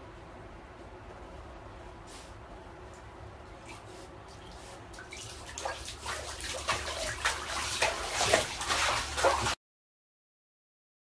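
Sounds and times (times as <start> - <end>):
bathwater splashing: 3.6 - 9.6.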